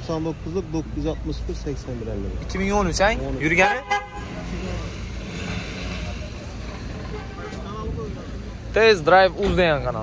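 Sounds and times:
faint voices: 0.0s - 10.0s
running vehicles: 0.0s - 10.0s.

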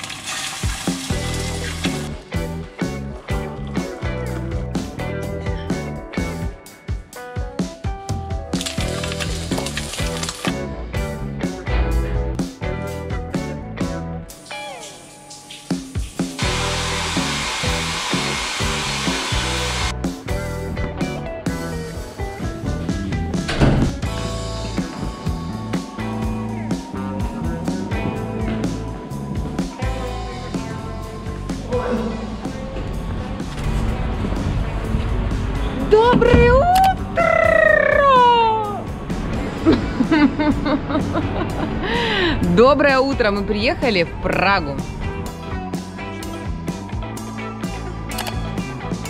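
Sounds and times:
shower water spraying: 0.0s - 2.2s, 8.6s - 10.6s, 14.4s - 19.9s
guitar music: 0.9s - 49.0s
street noise: 24.1s - 41.8s.

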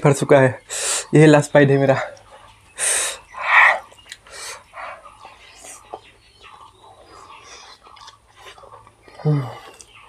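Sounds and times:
wet chewing noises: 3.2s - 10.0s.

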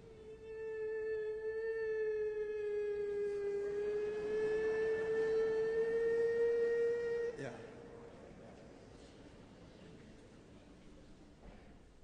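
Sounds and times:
man singing high held note: 0.0s - 8.3s.

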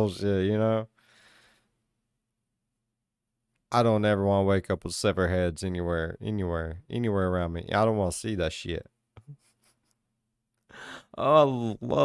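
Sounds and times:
man exhaling breathily: 10.7s - 11.2s.

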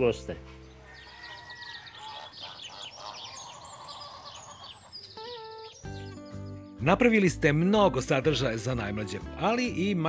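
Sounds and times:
birds chirping: 0.0s - 10.0s
long held bird call: 0.8s - 6.8s.

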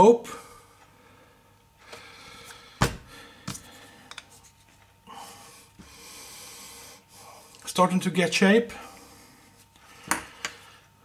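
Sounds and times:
steady breathy hiss: 5.0s - 7.8s, 8.6s - 11.0s.

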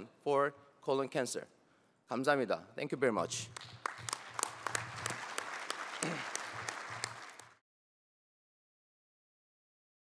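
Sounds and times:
audience applauding: 3.5s - 7.6s.

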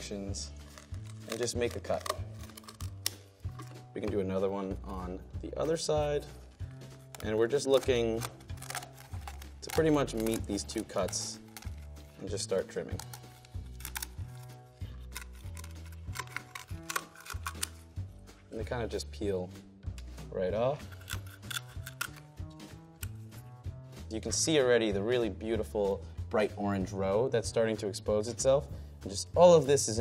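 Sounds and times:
background music with low bass: 0.0s - 30.0s
shears snipping shell: 0.6s - 3.8s, 6.9s - 11.9s, 12.9s - 17.8s, 20.9s - 23.2s.

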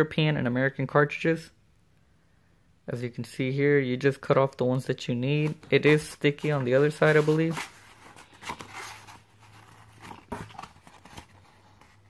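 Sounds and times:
paper label sheet rustling: 5.4s - 12.0s.

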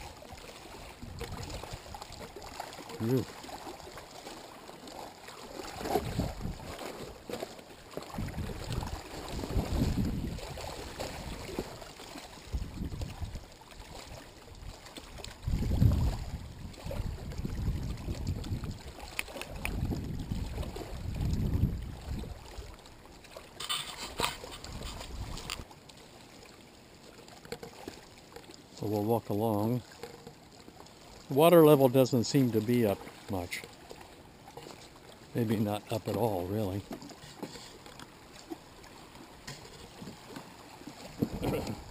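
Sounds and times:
wind buffeting microphone: 1.0s - 2.0s, 5.8s - 6.8s, 8.1s - 11.4s, 12.5s - 13.4s, 15.4s - 18.9s, 19.5s - 22.4s, 24.2s - 25.6s
brief rustle: 23.6s - 25.6s.

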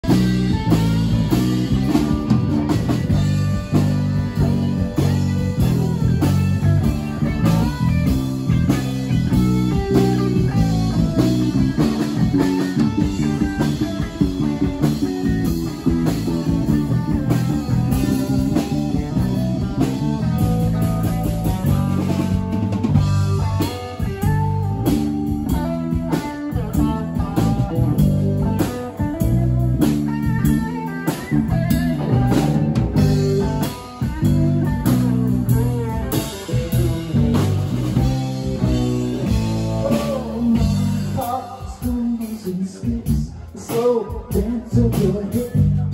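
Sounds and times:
drum kit: 0.0s - 45.9s
electric bass: 0.0s - 45.9s
electric guitar: 0.0s - 45.9s.

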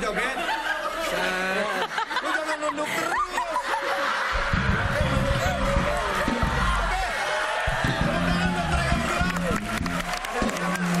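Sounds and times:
people laughing: 0.0s - 11.0s.

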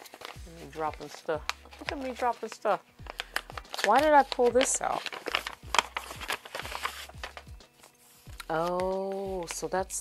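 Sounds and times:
paper rustling and crinkling: 0.0s - 9.8s
soft background music: 0.0s - 10.0s.

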